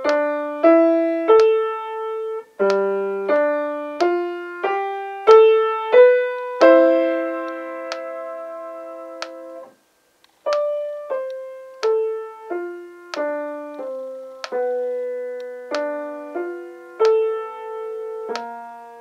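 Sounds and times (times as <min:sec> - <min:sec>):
slow piano melody: 0:00.0 - 0:09.8, 0:10.4 - 0:19.0
metronome clicking: 0:01.3 - 0:01.6, 0:02.6 - 0:02.8, 0:10.5 - 0:12.0, 0:13.1 - 0:14.6, 0:17.0 - 0:17.2, 0:18.3 - 0:18.5.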